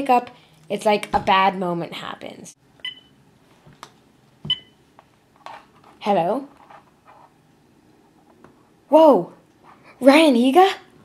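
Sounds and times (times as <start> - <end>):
phone handset beep: 2.8 - 3.1.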